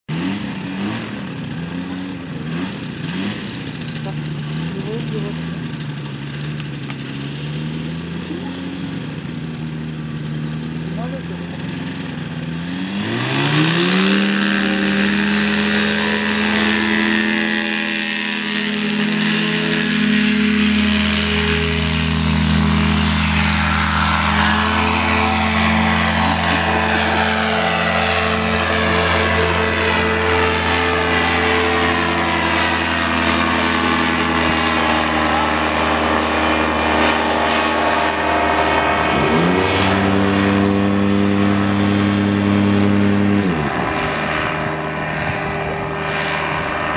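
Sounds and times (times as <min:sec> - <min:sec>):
paramotor engine and propeller drone: 0:00.1 - 0:46.9.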